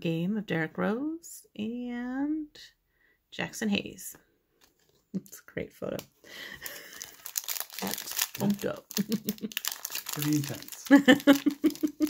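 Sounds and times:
foil wrapper crinkling: 0:06.5 - 0:12.0.

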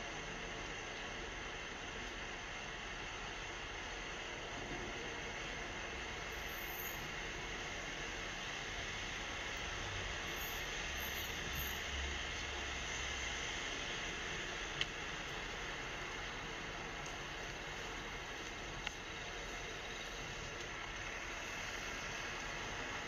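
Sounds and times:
traffic hum: 0:00.0 - 0:23.0.

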